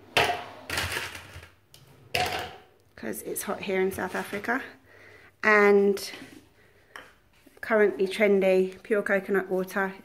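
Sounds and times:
ice cubes clattering into blender: 0.2 - 1.6.

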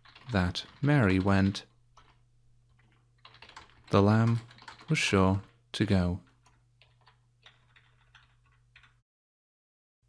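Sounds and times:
quiet keyboard keystrokes: 0.0 - 9.0.

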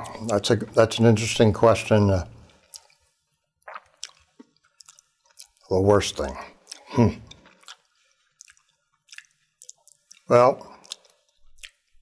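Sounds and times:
wet mouth clicks and lip smacks: 2.6 - 3.0, 3.6 - 5.6, 6.6 - 12.0.

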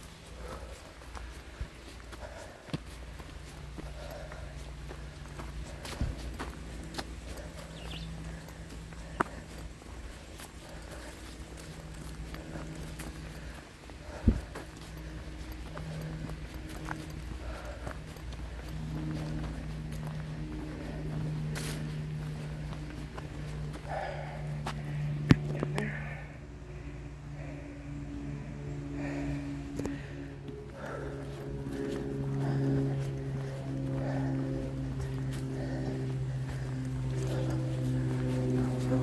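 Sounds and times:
footsteps on a dirt trail: 0.0 - 39.0
low hum: 0.0 - 39.0.

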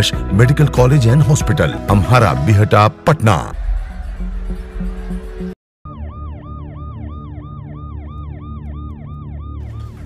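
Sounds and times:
siren yelping: 5.9 - 10.0.

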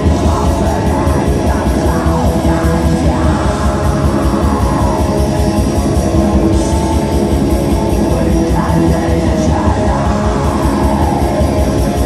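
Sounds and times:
distorted electric guitars: 0.0 - 12.0
fast dense drumming: 0.0 - 12.0.

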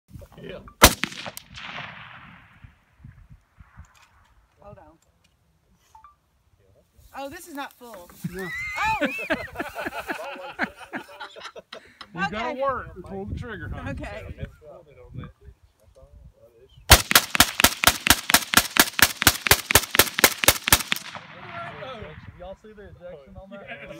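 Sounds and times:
rifle shot: 0.8 - 2.9, 16.9 - 22.4
rolling echo: 0.8 - 3.0, 16.9 - 22.6.

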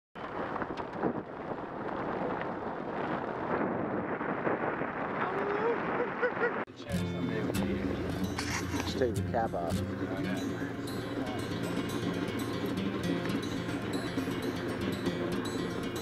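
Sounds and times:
tyres on snowy road: 0.2 - 6.6, 8.3 - 9.0
wind noise: 0.2 - 9.1.

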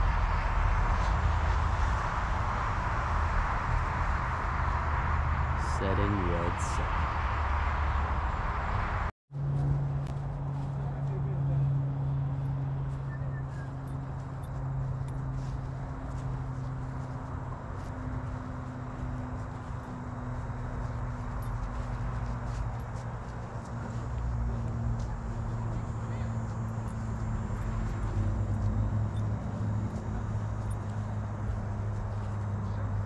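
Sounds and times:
outdoor background noise: 0.0 - 33.0
steady low hum: 0.0 - 33.0.

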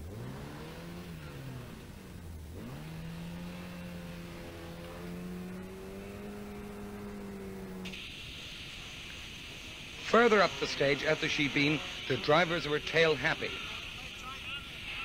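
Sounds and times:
rally car engine revving: 0.0 - 8.1, 9.8 - 14.2
steady hiss: 5.5 - 15.0.

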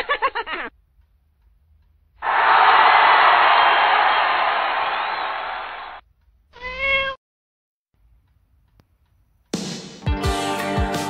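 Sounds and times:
cat meow: 6.6 - 7.2.

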